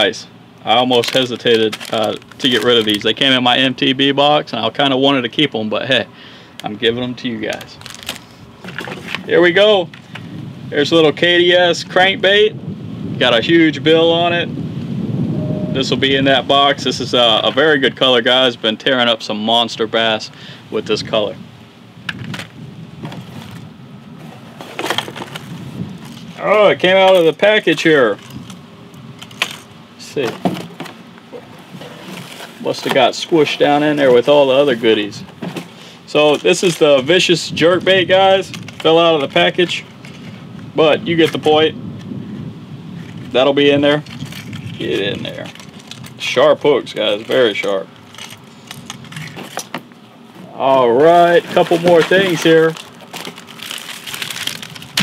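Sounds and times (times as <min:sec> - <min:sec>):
steady low rumble: 0:00.0 - 0:55.0
plastic pack clicking and rattling: 0:01.0 - 0:03.2, 0:07.5 - 0:09.3, 0:51.3 - 0:55.0.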